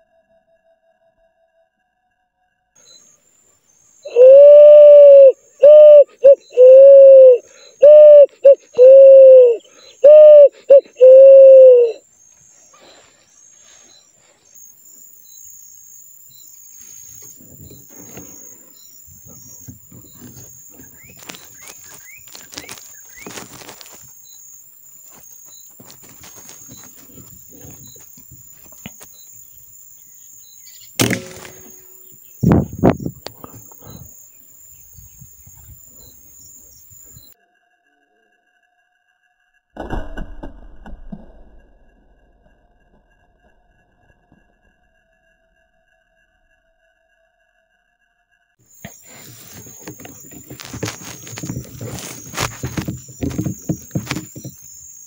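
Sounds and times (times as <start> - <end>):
pigeon cooing: 4.1 - 12.0
faint rustling: 16.8 - 24.3, 24.9 - 29.2, 48.8 - 55.0
thump: 31.0 - 31.8, 39.8 - 41.4.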